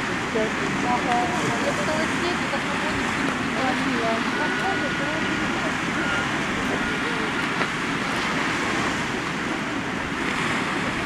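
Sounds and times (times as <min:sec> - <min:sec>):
waves breaking on rocky shore: 0:00.0 - 0:11.0.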